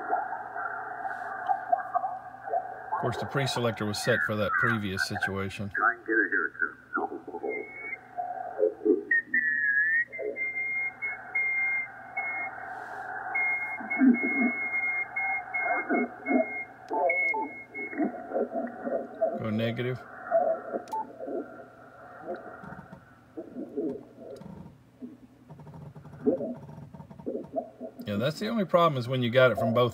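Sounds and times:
muffled radio voices: 0:00.0 - 0:24.5
high-pitched radio whistle: 0:06.2 - 0:19.7.

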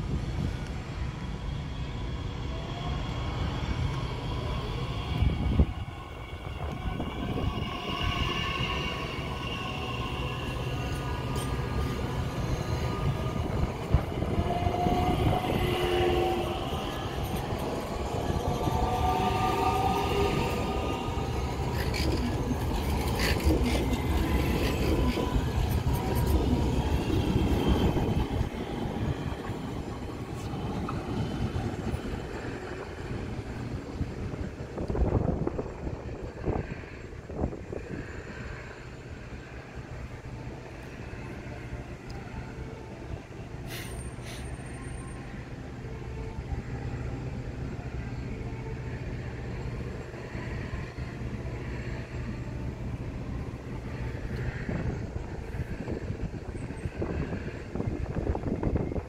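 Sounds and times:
train wheels rumbling: 0:00.0 - 0:41.4.

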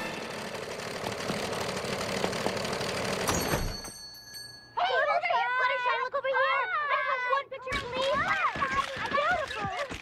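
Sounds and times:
sewing machine running: 0:00.0 - 0:03.7.

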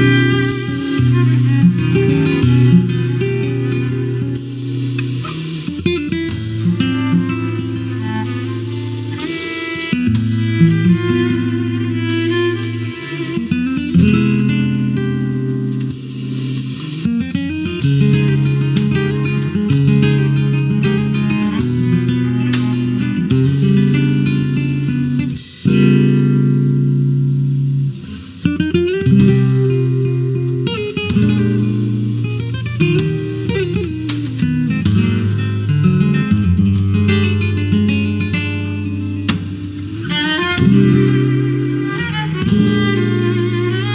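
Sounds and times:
cello: 0:00.0 - 0:15.4, 0:16.6 - 0:26.2, 0:29.0 - 0:43.9
acoustic guitar: 0:00.0 - 0:43.9.

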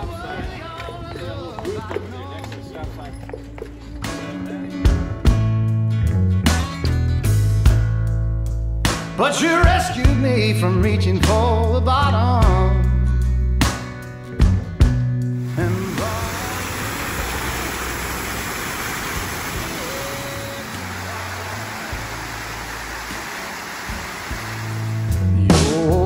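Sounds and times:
music: 0:00.0 - 0:18.3, 0:19.4 - 0:26.0
fountain water splashing: 0:15.4 - 0:25.4.

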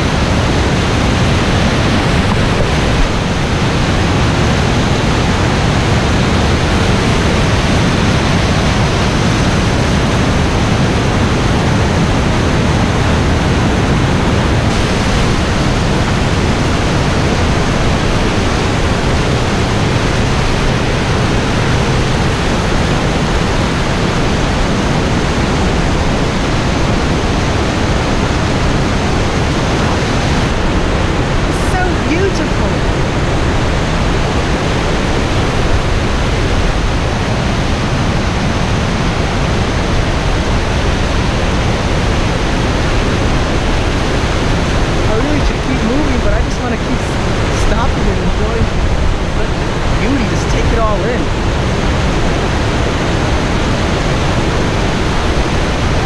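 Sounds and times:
rushing whitewater: 0:00.0 - 0:56.0.

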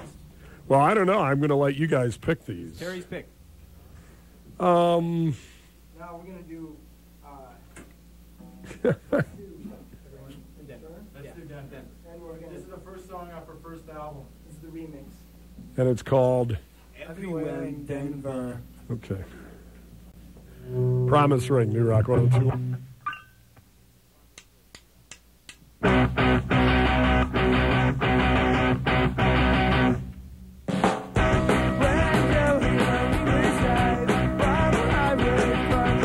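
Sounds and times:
guitar sounds: 0:20.5 - 0:23.1, 0:25.8 - 0:30.4
person speaking: 0:21.0 - 0:22.6
drumstick count-in clicks: 0:24.4 - 0:25.7.

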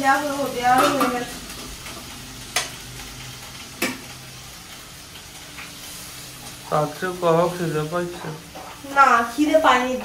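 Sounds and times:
food sizzling in hot oil: 0:00.0 - 0:10.0
spatula stirring in pan: 0:08.1 - 0:10.0.

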